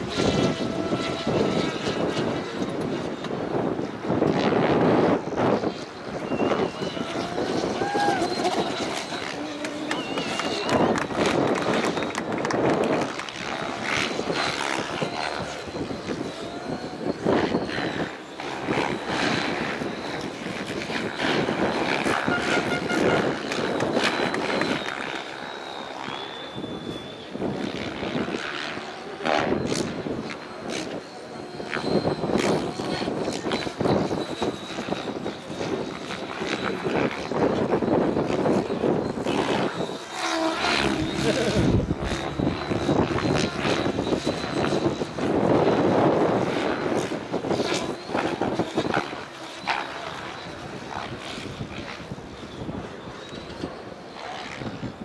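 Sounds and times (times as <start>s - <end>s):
high motor whine: 0.0s - 55.0s
rotor blades whooshing: 0.0s - 55.0s.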